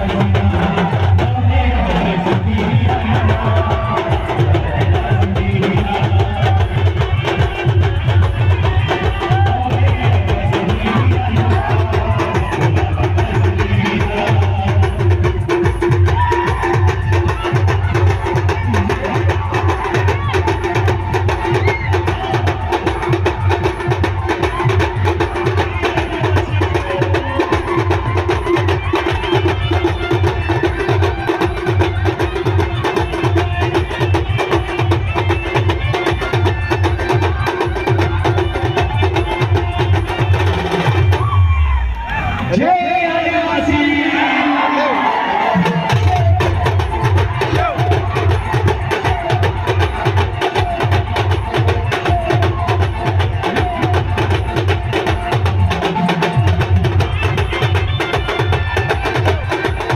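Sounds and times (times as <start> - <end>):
fast dense drumming: 0.0 - 41.4, 45.6 - 59.9.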